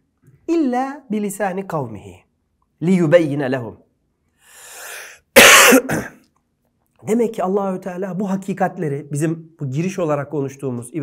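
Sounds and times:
breath intake: 0:04.4 - 0:06.1
man coughing: 0:05.4 - 0:06.2.

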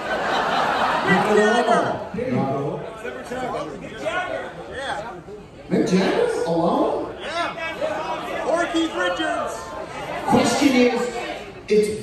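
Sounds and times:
people chattering: 0:00.0 - 0:12.0.

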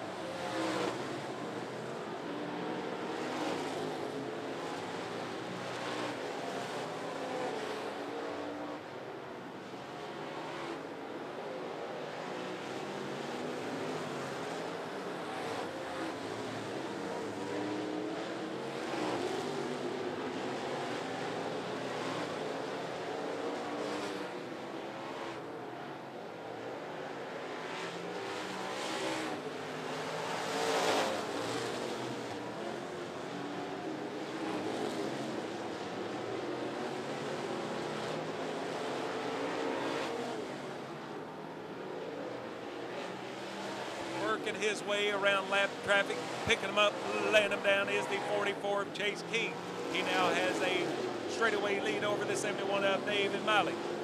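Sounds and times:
racing car engines: 0:00.0 - 0:54.0.

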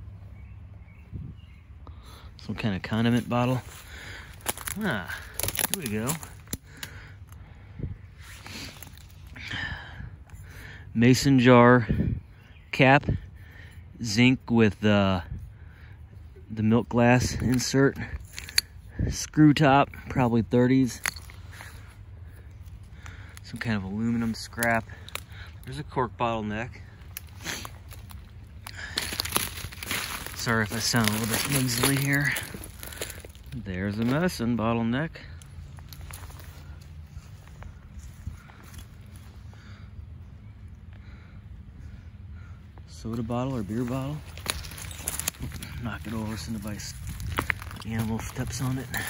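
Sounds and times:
hand rustling through dry twigs: 0:02.4 - 0:11.2, 0:16.8 - 0:39.9, 0:42.4 - 0:49.0
soft breathing: 0:03.6 - 0:05.4.

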